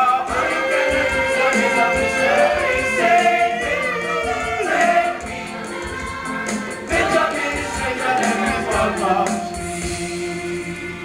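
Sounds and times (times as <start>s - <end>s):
children's chorus singing calypso song: 0.0s - 11.0s
musical backing: 0.0s - 11.0s.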